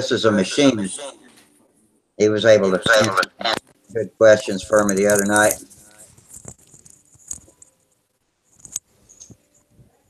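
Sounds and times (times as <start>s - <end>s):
microphone handling clicks and taps: 4.7s - 7.7s.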